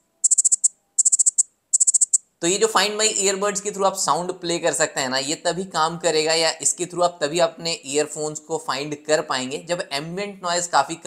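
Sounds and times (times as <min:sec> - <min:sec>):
earbud high-pitched beeping chirps: 0:00.0 - 0:02.3.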